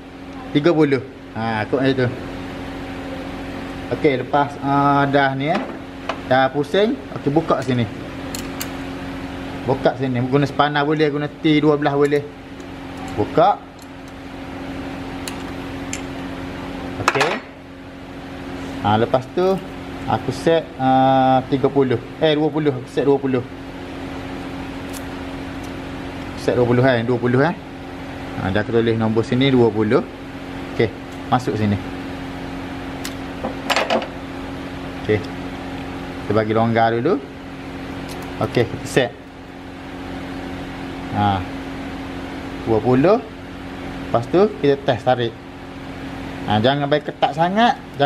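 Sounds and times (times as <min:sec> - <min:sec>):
steady machine hum: 0:00.0 - 0:48.0.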